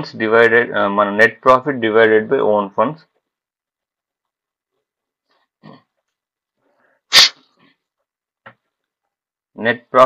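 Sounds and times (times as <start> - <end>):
faint breath: 6.6 - 7.8
person sneezing: 7.1 - 7.6.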